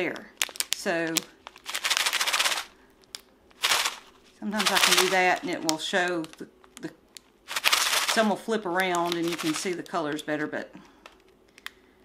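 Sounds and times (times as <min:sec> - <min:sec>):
small beads rattling in plastic packet: 0:00.0 - 0:06.4, 0:07.4 - 0:09.9.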